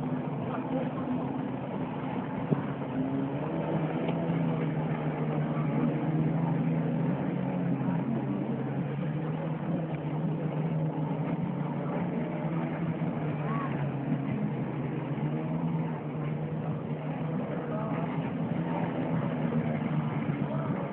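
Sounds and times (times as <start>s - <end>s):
boat motor humming: 0.0s - 20.9s.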